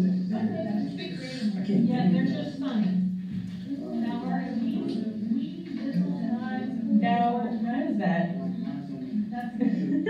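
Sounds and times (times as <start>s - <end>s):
muffled voices over speakers: 0.0s - 10.0s.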